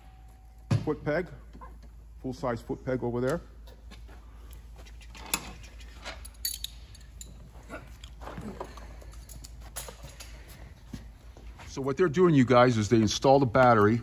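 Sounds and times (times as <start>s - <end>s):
metal tools clinking: 5.2s - 10.6s.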